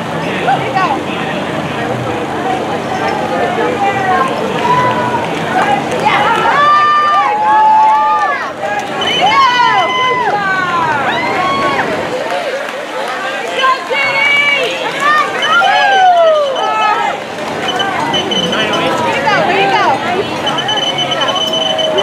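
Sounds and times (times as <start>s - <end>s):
spectators shouting and cheering: 0.0s - 22.0s.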